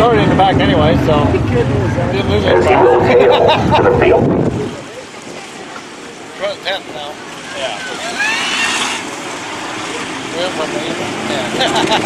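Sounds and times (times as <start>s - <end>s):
race car engines: 0.0s - 5.2s, 7.3s - 12.0s
spectators talking: 1.2s - 7.9s.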